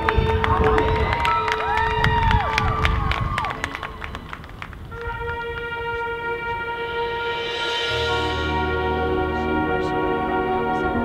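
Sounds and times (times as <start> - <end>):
marching band gliding tones: 0.0 - 11.0
marching band held chord: 0.0 - 11.0.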